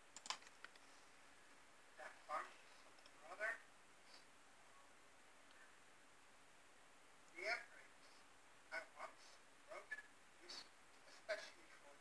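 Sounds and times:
computer mouse clicking: 0:00.1 - 0:00.9.

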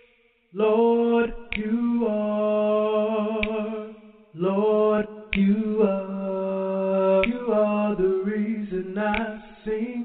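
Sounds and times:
gospel worship singing: 0:00.6 - 0:10.0
sharp click: 0:03.4 - 0:03.7, 0:09.1 - 0:09.4.

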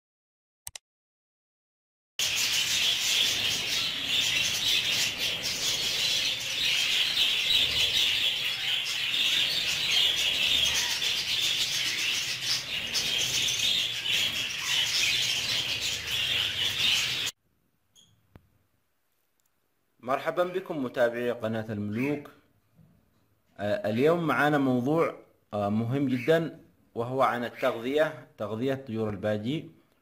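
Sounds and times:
budgerigars chattering and chirping: 0:02.2 - 0:17.3.

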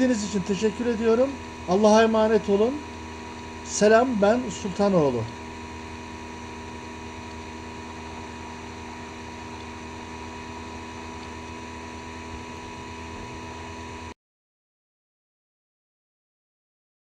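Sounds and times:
constant electrical tones: 0:00.0 - 0:14.1
electrical hum and hiss: 0:00.0 - 0:14.2.

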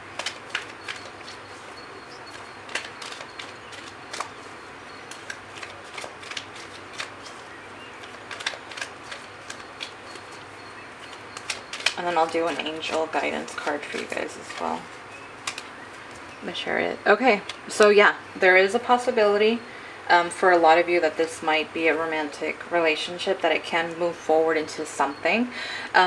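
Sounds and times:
cards being shuffled: 0:00.0 - 0:04.5, 0:05.1 - 0:16.3.

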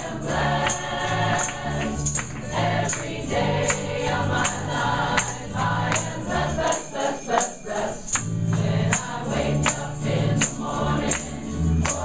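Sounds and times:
choir singing gospel: 0:00.0 - 0:12.0
tambourine struck: 0:00.0 - 0:12.0
low bass notes: 0:08.2 - 0:12.0.

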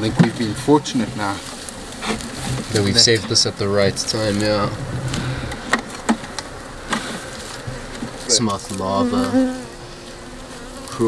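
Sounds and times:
honeybees buzzing: 0:06.3 - 0:11.0.

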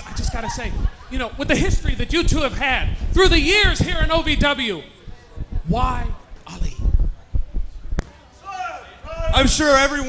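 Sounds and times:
dull low thumps: 0:00.2 - 0:08.0.

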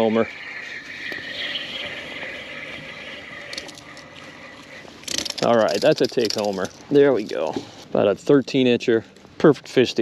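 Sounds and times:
fishing reel: 0:00.0 - 0:06.7
steady high hum: 0:00.0 - 0:10.0.

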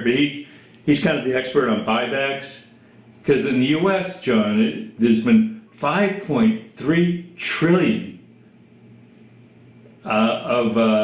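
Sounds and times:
room and microphone hiss: 0:00.0 - 0:11.0.

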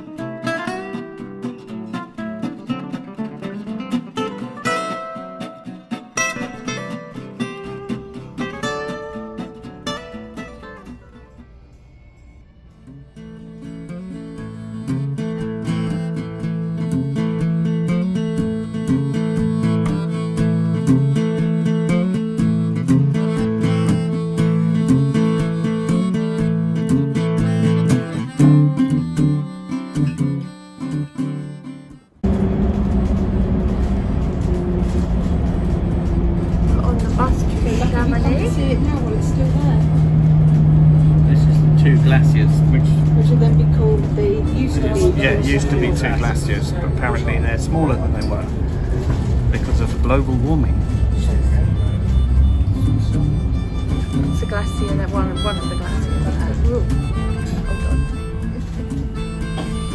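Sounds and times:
acoustic guitar music: 0:00.0 - 0:59.9
bus engine and road noise: 0:12.6 - 0:29.2, 0:32.1 - 0:59.9
passengers talking: 0:32.2 - 0:59.9.

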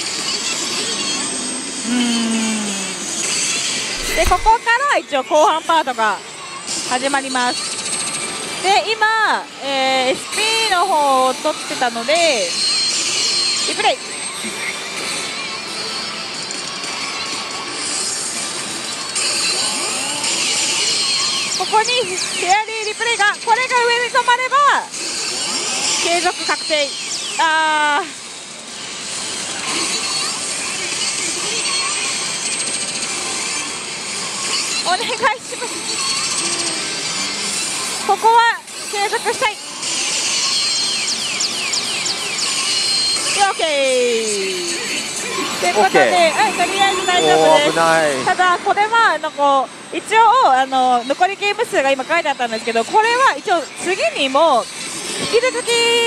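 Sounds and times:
electronic slot machine effects: 0:47.2 - 0:48.2.

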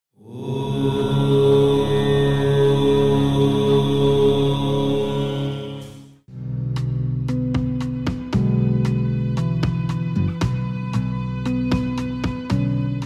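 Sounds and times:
chanted mantra on one long note: 0:00.2 - 0:05.8.

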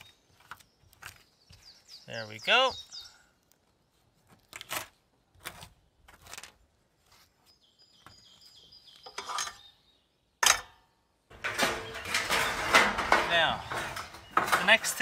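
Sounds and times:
bird chirping: 0:00.0 - 0:04.7, 0:07.4 - 0:12.7, 0:13.6 - 0:15.0
corrugated metal sheet rattling: 0:11.3 - 0:15.0.

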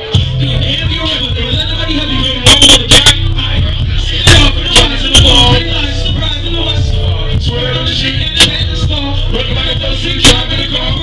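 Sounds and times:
hip hop beat with heavy bass: 0:00.0 - 0:11.0
rapper's voice on microphone: 0:00.0 - 0:11.0.

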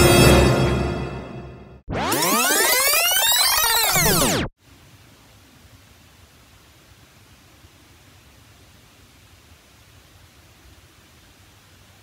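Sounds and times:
synthesized tones sweeping up: 0:01.9 - 0:04.5
faint hiss: 0:04.6 - 0:12.0.

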